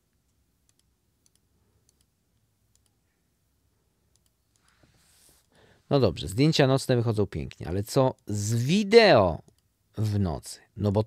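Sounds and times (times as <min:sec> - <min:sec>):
faint computer mouse clicks: 0:00.2 - 0:02.1, 0:02.7 - 0:03.0.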